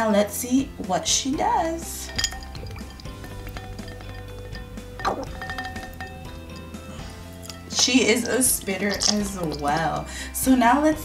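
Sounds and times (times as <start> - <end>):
background music: 0.0 - 11.0
water sloshing: 1.9 - 10.5
ice cubes clinking against glass: 2.0 - 6.8, 7.5 - 10.1.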